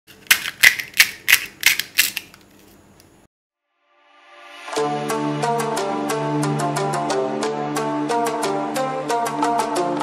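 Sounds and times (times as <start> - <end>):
fried shells crunching: 0.1 - 2.4.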